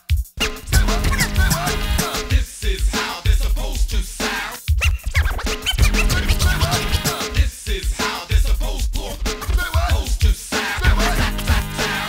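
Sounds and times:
hip hop drum beat: 0.0s - 12.0s
turntable scratching: 0.0s - 12.0s.

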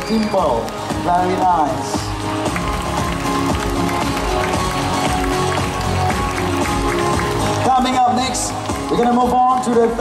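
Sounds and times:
music with a steady beat: 0.7s - 10.0s.

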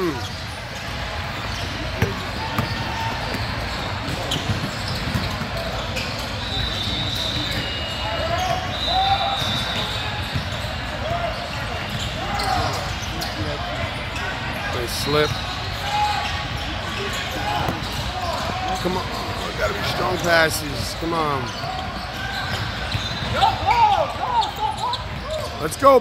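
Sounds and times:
voices in echoing hall: 0.0s - 26.0s
basketball bouncing on court: 1.5s - 7.8s, 9.3s - 13.4s, 16.5s - 20.0s, 21.5s - 23.8s.

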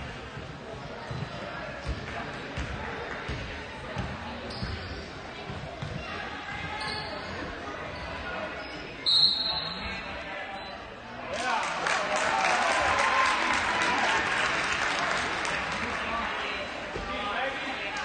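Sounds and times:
crowd chatter: 0.0s - 18.0s
referee's whistle: 9.0s - 10.0s.

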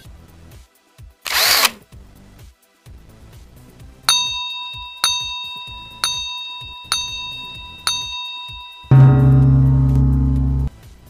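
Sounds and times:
bell-like ding: 4.1s - 10.7s.

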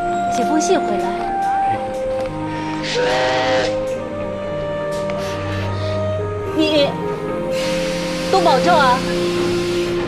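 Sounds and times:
background music: 0.0s - 10.0s
steam locomotive whistle: 2.8s - 3.8s, 7.6s - 10.0s
steam hiss: 7.5s - 10.0s.

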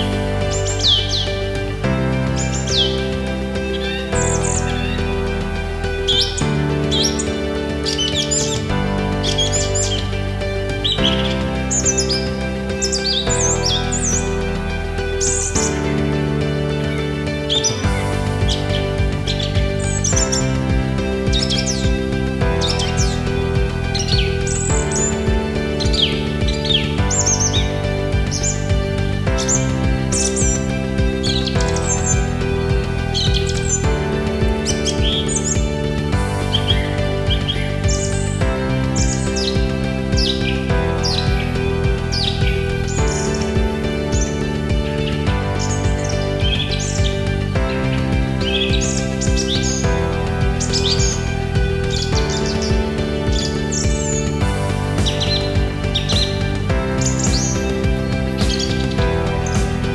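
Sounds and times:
background music of soft chords: 0.0s - 59.9s
songbirds chirping and whistling: 0.0s - 59.9s.

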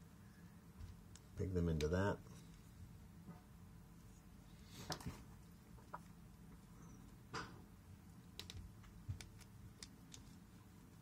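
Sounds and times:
plastic parts clicking and rubbing: 8.2s - 10.6s.

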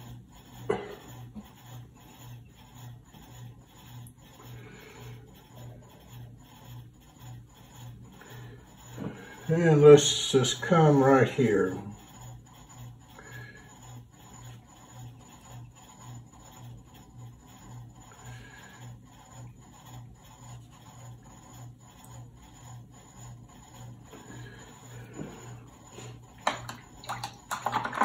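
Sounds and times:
brush rubbing on paper: 0.0s - 27.0s
low pulsing hum: 0.0s - 27.1s.

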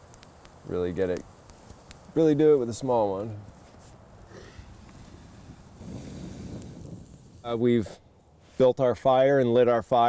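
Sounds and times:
wind rumble on microphone: 4.6s - 7.7s.

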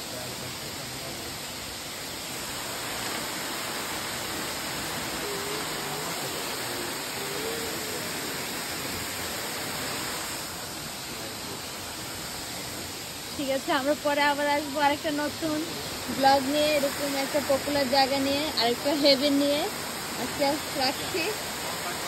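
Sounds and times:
waterfall roar: 0.0s - 22.0s.

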